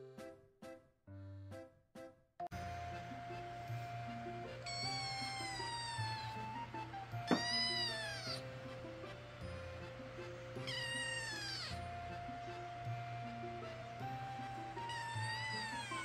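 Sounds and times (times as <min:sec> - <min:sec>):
kitten meowing: 0:04.6 - 0:06.6, 0:07.3 - 0:08.4, 0:10.6 - 0:11.8, 0:14.6 - 0:16.0.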